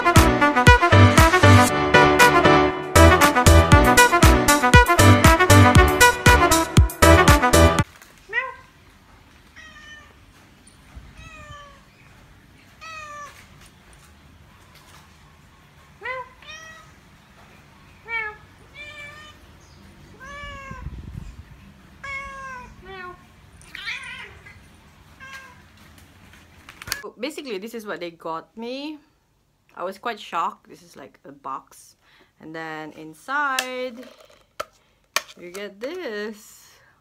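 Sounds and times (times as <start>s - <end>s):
cat meowing: 9.5s - 10.3s, 11.0s - 11.9s, 12.7s - 13.5s, 16.0s - 17.0s, 18.0s - 19.4s, 20.1s - 21.0s, 22.0s - 25.7s.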